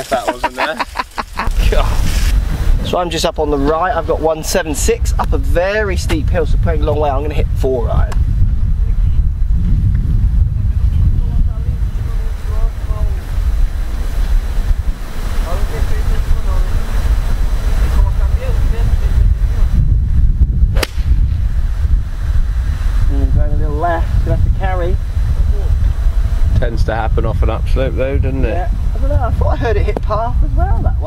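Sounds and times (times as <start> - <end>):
wind buffeting microphone: 0.0 - 31.0
golf club striking ball: 20.7 - 21.5.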